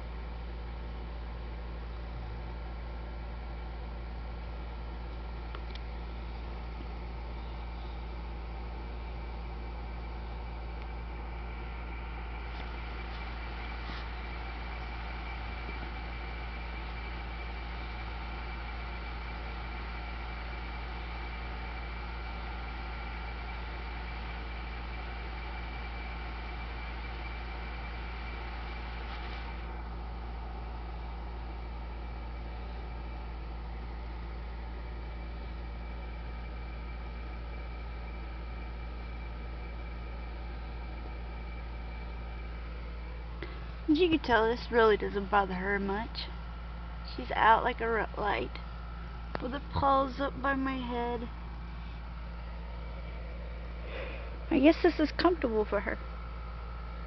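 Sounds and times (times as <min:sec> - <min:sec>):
low electrical hum with hiss: 0:00.0 - 0:57.0
faint high whines: 0:05.0 - 0:57.0.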